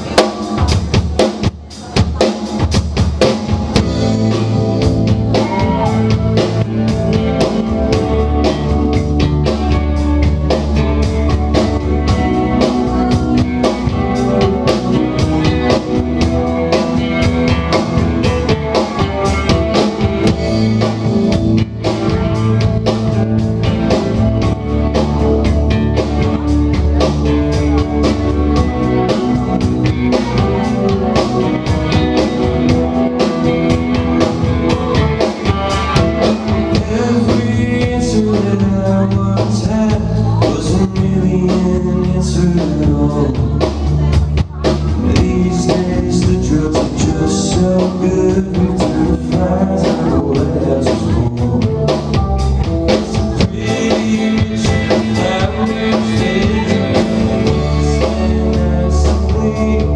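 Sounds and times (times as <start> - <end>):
bass guitar: 0.0 - 59.9
drum kit beats: 0.0 - 59.9
electric keyboard: 0.0 - 59.9
electric guitar: 2.1 - 59.9.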